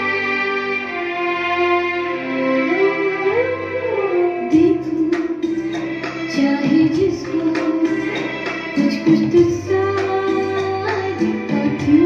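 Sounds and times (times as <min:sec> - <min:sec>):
backing track: 0:00.0 - 0:12.0
woman singing: 0:04.4 - 0:12.0
percussion: 0:04.6 - 0:12.0.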